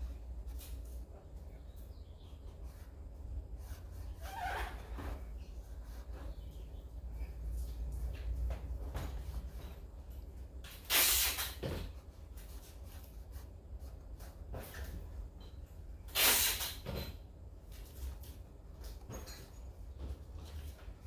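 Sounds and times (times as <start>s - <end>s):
low steady hum: 0.0s - 10.9s
paintbrush scratching on canvas: 2.3s - 6.7s.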